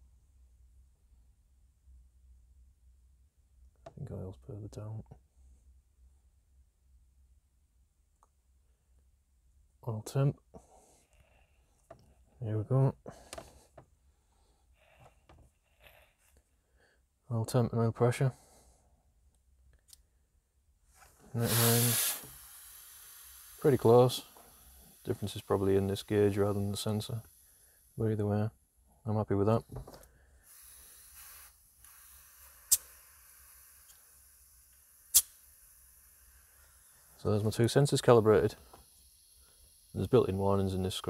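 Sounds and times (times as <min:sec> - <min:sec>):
faint compressed air hiss: 0:10.1 - 0:17.1, 0:18.0 - 0:19.2, 0:19.9 - 0:41.0.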